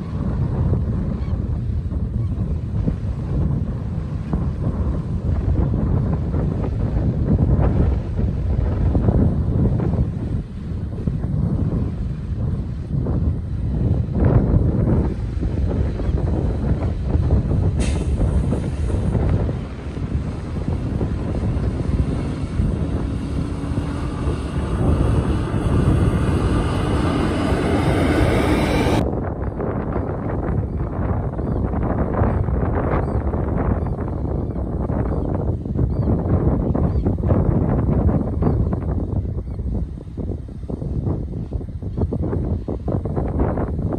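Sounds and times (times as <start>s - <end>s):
wind buffeting microphone: 0.0s - 43.9s
steady motor hum: 18.9s - 29.0s.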